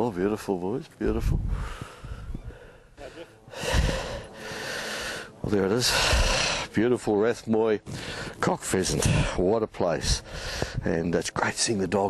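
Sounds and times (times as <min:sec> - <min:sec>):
heavy breathing: 0:01.4 - 0:06.8, 0:07.8 - 0:08.4, 0:09.0 - 0:09.5, 0:10.1 - 0:10.8.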